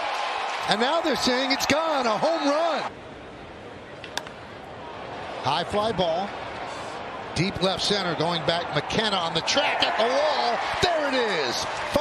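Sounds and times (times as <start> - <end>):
crowd noise: 0.0 - 12.0.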